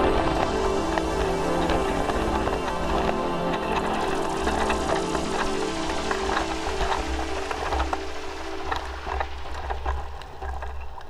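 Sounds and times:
background music with held tones: 0.0s - 11.0s
bike rattling over rough ground: 0.0s - 11.0s
wind rumble on microphone: 0.0s - 11.0s.

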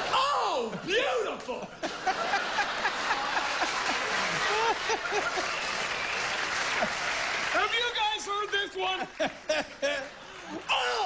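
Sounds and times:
audience clapping: 1.9s - 11.0s.

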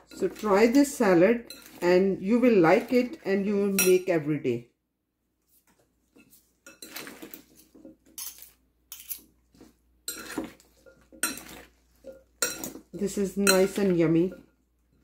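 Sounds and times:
metal utensils clinking on glass: 6.7s - 9.3s, 10.1s - 14.4s.

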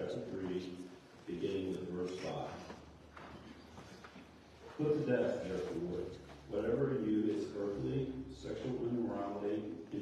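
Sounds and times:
man reading aloud: 0.0s - 2.8s, 4.7s - 10.0s.

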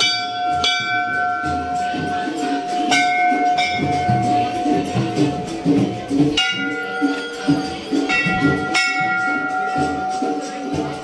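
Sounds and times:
brass bells ringing: 0.0s - 11.0s.

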